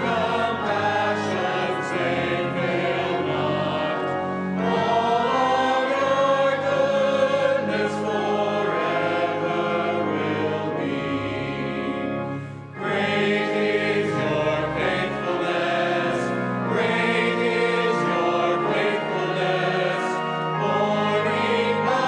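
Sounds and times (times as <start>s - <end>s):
choir and congregation singing hymn: 0.0s - 22.0s.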